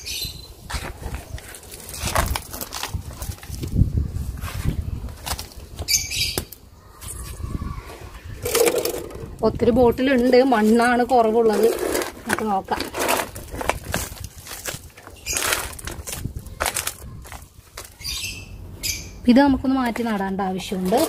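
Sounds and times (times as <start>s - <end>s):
soil scraped and rustled: 0.6s - 6.0s, 7.0s - 18.2s, 19.8s - 21.0s.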